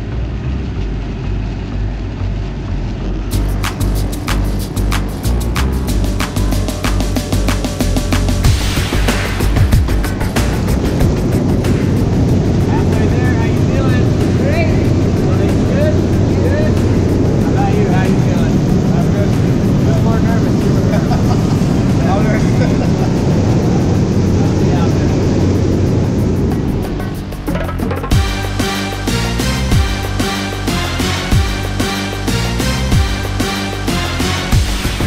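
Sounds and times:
plane engine and wind noise: 0:00.0 - 0:35.0.

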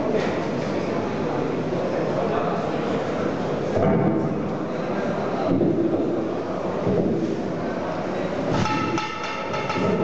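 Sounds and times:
hall background murmur: 0:00.0 - 0:10.0.

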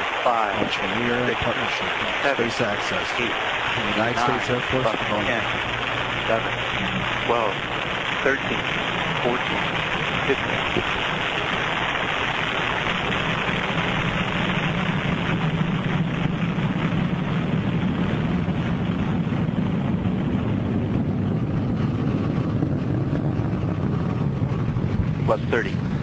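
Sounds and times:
rocket engines roaring: 0:00.0 - 0:26.0.

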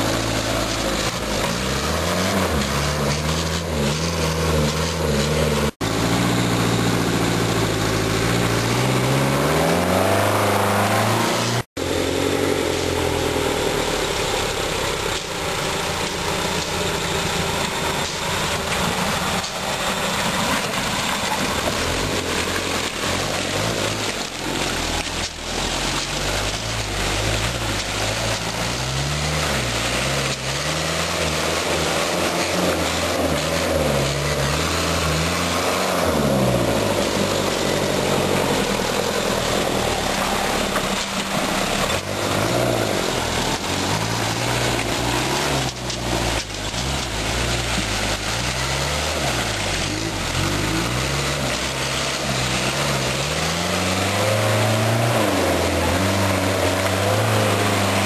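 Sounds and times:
engine revs rising and falling: 0:00.0 - 0:58.0.

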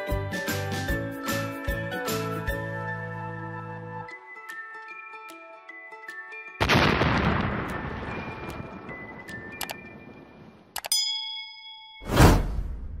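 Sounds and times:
bright ringing ding: 0:10.8 - 0:12.1
whoosh and boom: 0:12.0 - 0:13.0.

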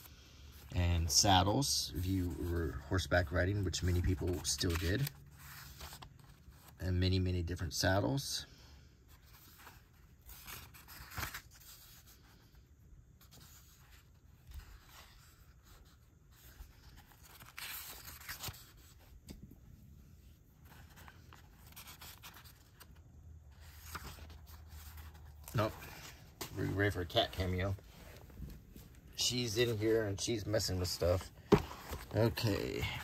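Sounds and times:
paper pages rustling and turning: 0:00.6 - 0:06.8, 0:09.1 - 0:12.5, 0:13.2 - 0:19.4, 0:20.4 - 0:33.0
books knocking and shuffling: 0:25.4 - 0:29.1, 0:30.2 - 0:33.0.

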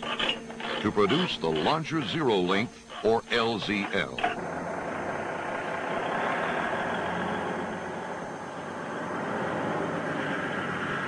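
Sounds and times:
vehicle engine running: 0:04.4 - 0:11.0.

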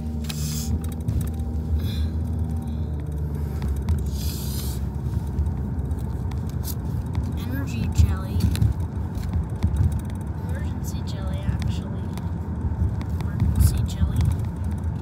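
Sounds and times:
road rumble inside car: 0:00.0 - 0:15.0.

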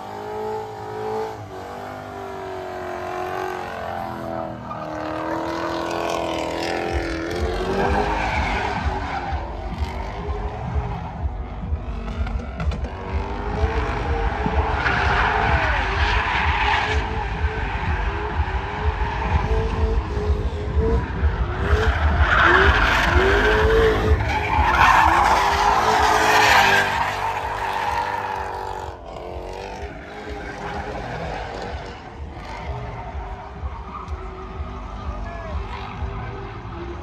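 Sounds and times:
car engine revving: 0:00.0 - 0:37.0
tyres screeching: 0:21.4 - 0:34.6.

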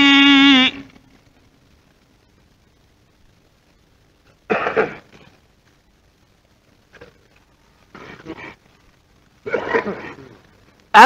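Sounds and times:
old recording hiss: 0:00.0 - 0:11.0.

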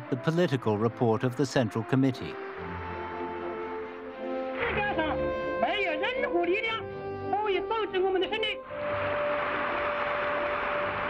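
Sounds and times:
man delivering a speech: 0:00.0 - 0:02.4
background music: 0:00.0 - 0:11.0.

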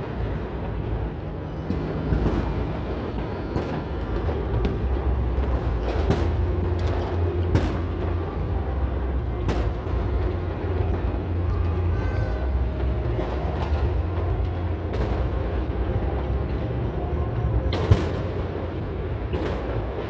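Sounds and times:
distant fireworks rumble: 0:00.0 - 0:20.0
fireworks crackling: 0:00.0 - 0:20.0
sharp firework bangs: 0:17.5 - 0:20.0.

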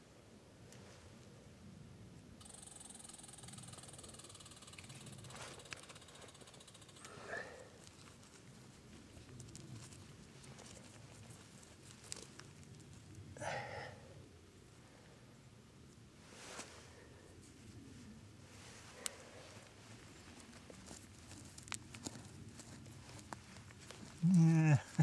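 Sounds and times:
fingers digging in soil: 0:03.6 - 0:13.2, 0:18.9 - 0:25.0.

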